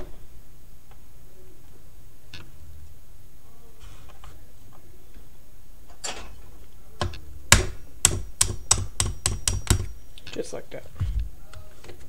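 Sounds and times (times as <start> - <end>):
hammer tapping metal punch: 7.0 - 10.0.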